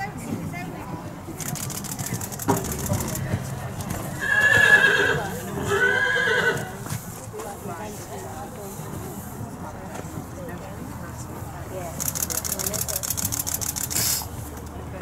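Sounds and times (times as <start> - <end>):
horse whinnying: 4.2 - 6.8.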